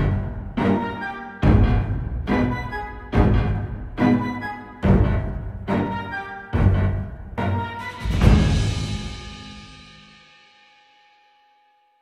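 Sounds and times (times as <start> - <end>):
soundtrack music held tones: 0.0 - 11.6.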